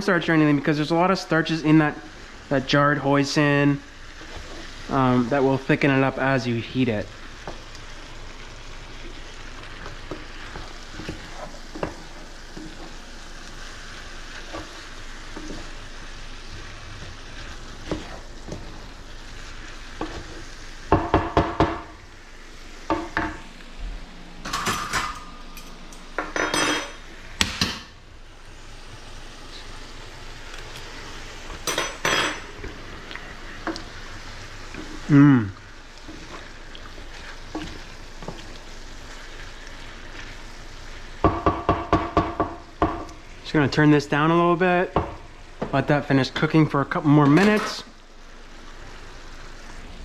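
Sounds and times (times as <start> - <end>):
vegetables sizzling in a skillet: 0.0 - 50.0
wooden spatula scraping: 3.4 - 7.8, 8.8 - 21.0, 32.4 - 41.1
utensils knocking on pan: 20.9 - 22.0, 22.9 - 23.4, 41.2 - 43.1.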